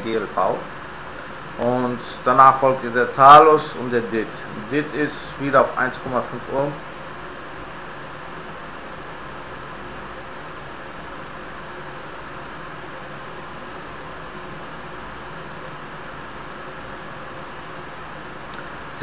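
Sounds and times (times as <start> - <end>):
faint high whine: 0.0 - 19.0
room noise hiss: 0.0 - 19.0.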